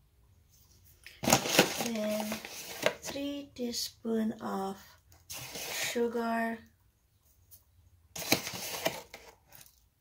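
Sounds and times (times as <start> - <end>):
granular scrape of spoon: 5.3 - 6.0.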